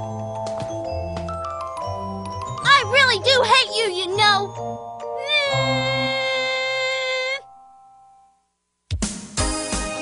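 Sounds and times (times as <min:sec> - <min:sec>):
background music: 0:00.0 - 0:10.0
long high vocal cry: 0:05.2 - 0:07.4.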